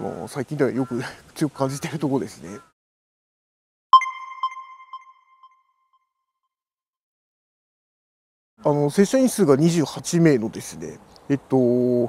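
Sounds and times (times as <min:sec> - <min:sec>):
electronic ping echoing: 0:04.0 - 0:05.8.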